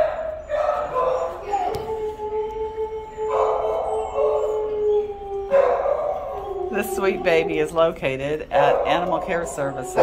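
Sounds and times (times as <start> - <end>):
dogs howling: 0.0 - 10.0.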